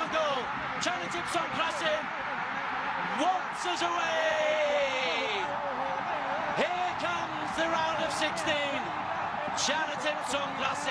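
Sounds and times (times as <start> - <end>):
football commentator talking: 0.0 - 10.9
stadium crowd noise: 0.0 - 10.9.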